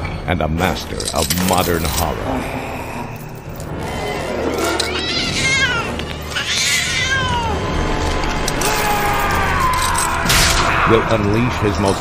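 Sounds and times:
cat yowling: 4.8s - 7.6s.

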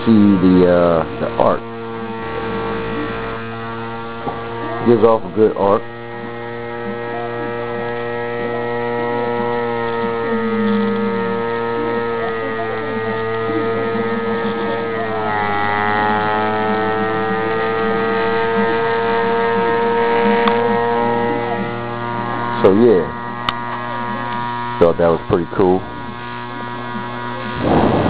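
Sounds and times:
electric motor whine over hum: 0.0s - 28.0s.

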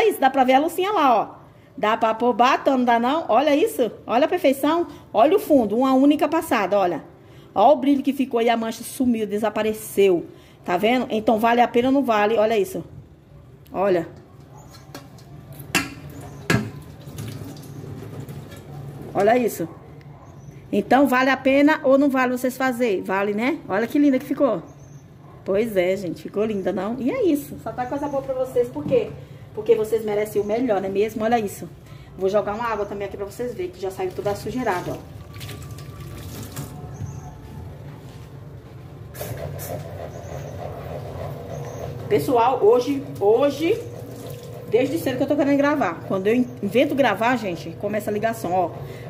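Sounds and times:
low rumble of machinery or traffic: 15.2s - 49.0s
water sloshing in a sink: 16.0s - 19.1s, 33.9s - 37.2s, 43.1s - 45.8s.

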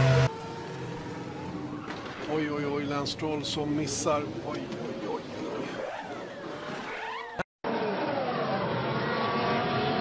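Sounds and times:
racing car engine running: 0.0s - 2.2s.

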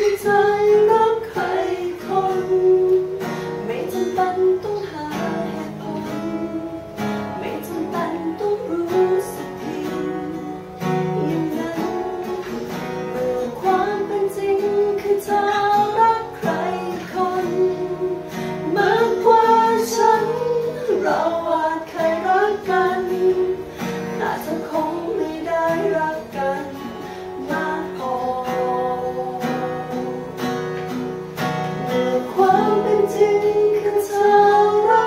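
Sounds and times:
man singing: 0.0s - 6.8s, 7.4s - 23.6s, 24.2s - 30.4s, 31.9s - 35.0s
woman singing pop ballad: 0.0s - 30.7s, 31.9s - 35.0s
acoustic guitar strumming: 0.0s - 35.0s.

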